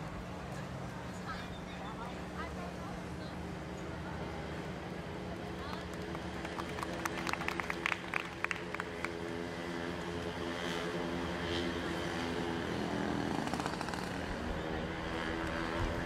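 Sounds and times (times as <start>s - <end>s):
engine drone: 0.0s - 16.0s.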